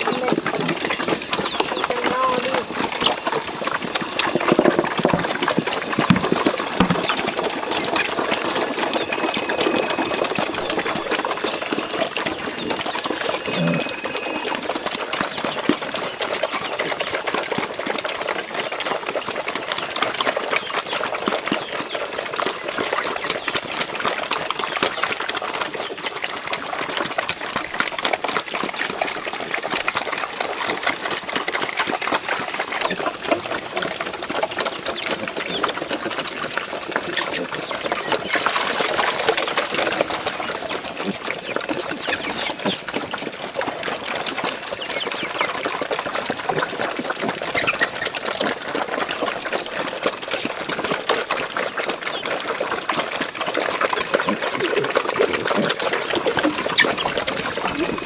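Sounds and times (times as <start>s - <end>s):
pigs chomping and slurping: 0.0s - 58.0s.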